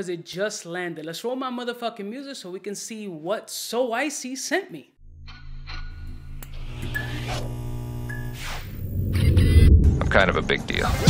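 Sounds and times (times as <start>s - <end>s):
deep bass drone: 5.0s - 11.0s
crackling electric buzz: 5.3s - 9.8s.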